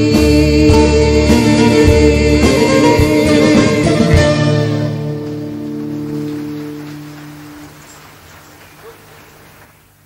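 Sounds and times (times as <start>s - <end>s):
cassette hiss: 3.2s - 10.0s.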